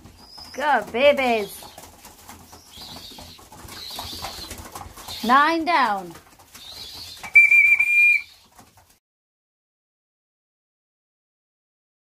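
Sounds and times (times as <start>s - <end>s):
pigeons fluttering wings on straw: 0.0s - 9.0s
pigeons cooing: 0.1s - 5.4s, 6.4s - 8.6s.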